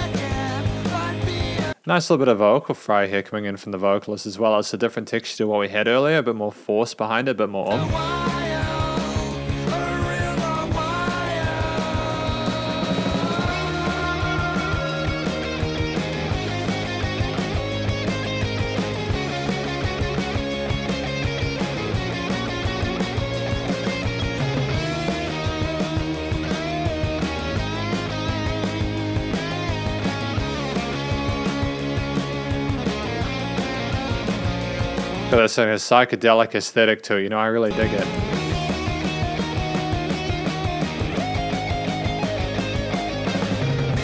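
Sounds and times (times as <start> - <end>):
rock song: 0.0 - 1.8, 7.7 - 35.8, 37.7 - 44.0
lead guitar gliding notes: 12.2 - 35.3, 37.7 - 44.0.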